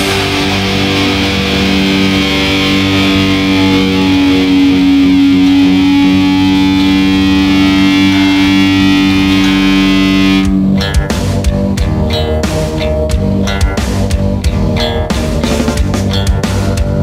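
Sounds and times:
distorted electric guitar riff: 0.0 - 17.0.

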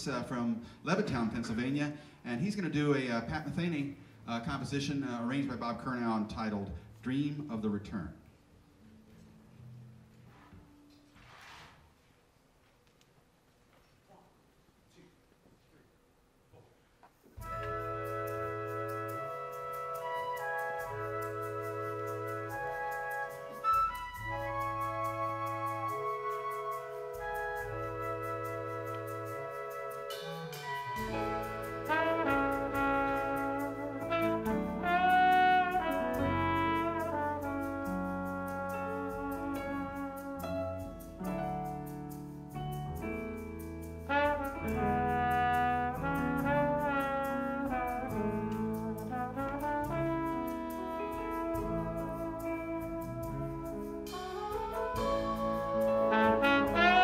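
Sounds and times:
jazz big band ballad: 17.3 - 57.0.

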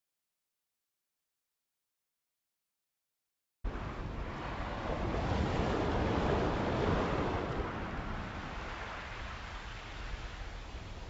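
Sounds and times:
wind rumbling on microphone: 3.7 - 11.0.

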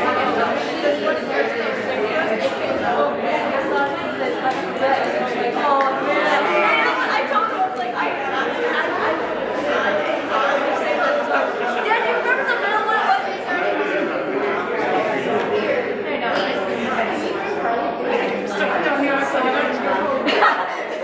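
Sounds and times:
murmur of overlapping conversations: 0.0 - 21.0.

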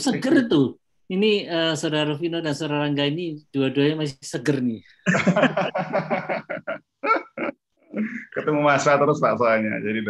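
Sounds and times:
man laughing: 5.1 - 8.6.

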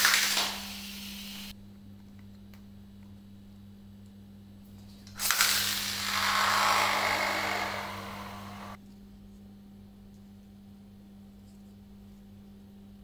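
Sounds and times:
spinning top launched: 5.2 - 8.8
spinning top whirring on tile floor: 5.2 - 8.8.

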